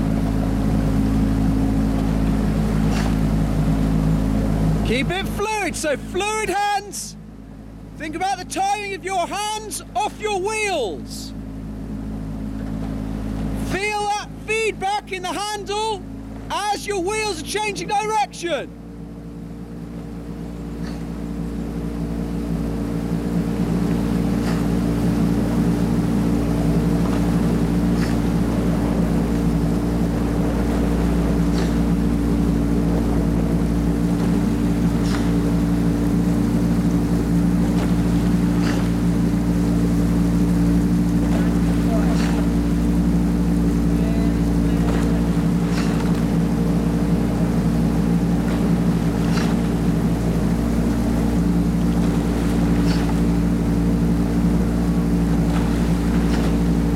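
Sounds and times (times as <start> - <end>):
outboard motor droning: 0.0 - 56.9
oar blades knocking: 48.4 - 50.9.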